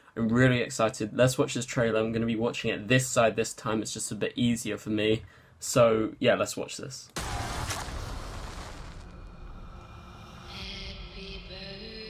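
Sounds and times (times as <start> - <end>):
match flaring with deep rumble: 7.2 - 9.8.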